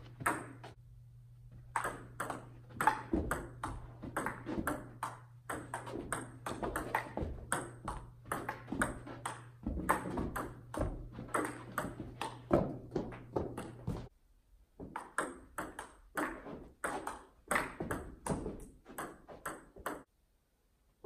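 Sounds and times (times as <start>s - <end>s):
low hum: 0.0s - 6.4s
ping pong ball clicking: 1.7s - 12.6s, 19.0s - 20.1s.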